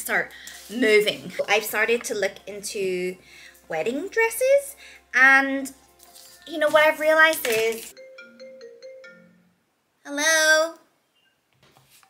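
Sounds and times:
phone ringtone melody: 7.9s - 9.6s.

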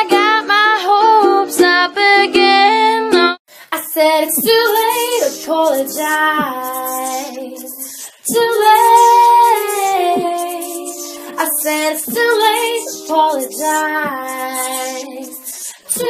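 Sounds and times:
a cappella female harmony singing: 0.0s - 16.0s.

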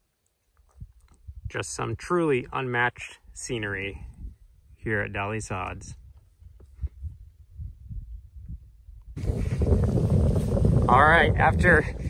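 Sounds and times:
wind buffeting microphone: 0.7s - 1.6s, 3.9s - 12.0s.

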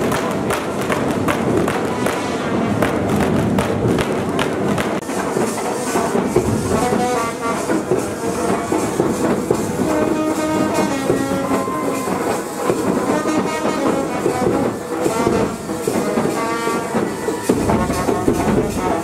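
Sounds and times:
brass band playing: 0.0s - 19.0s
crowd din: 0.0s - 19.0s.

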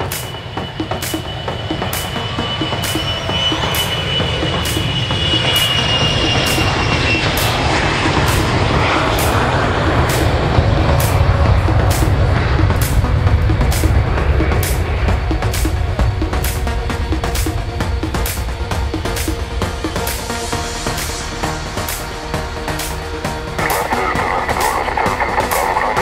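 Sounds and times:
background music with beat: 0.0s - 26.0s
jet engines whining: 0.0s - 26.0s.

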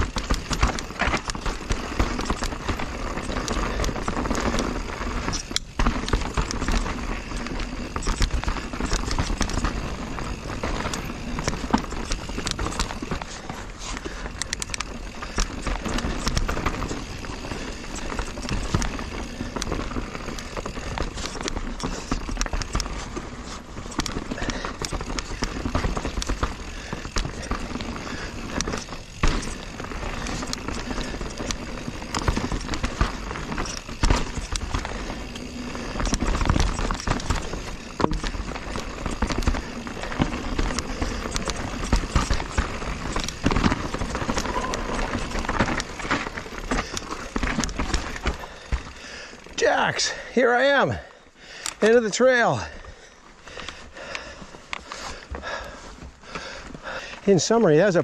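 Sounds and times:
bike knocking and rattling: 0.0s - 58.0s
bike tyres rolling over dirt: 0.0s - 58.0s.

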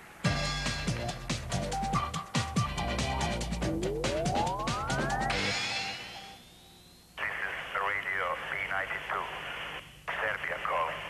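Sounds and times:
radio announcer speaking: 7.2s - 11.0s.

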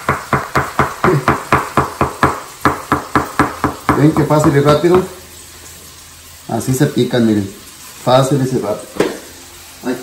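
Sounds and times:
cleaver chopping on wooden board: 0.0s - 4.1s.

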